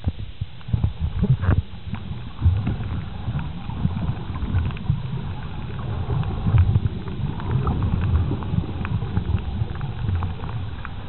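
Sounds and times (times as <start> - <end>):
faint crackling clicks: 0.0 - 11.0
muffled underwater rumble: 0.0 - 11.0.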